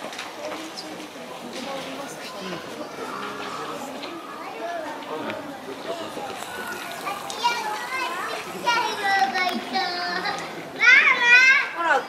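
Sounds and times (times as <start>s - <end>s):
children calling and chattering: 0.0s - 12.0s
crowd chatter: 0.0s - 12.0s.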